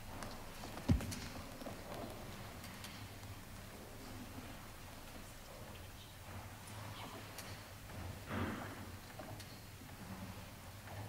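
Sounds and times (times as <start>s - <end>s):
knocks in wooden pews: 0.8s - 1.4s.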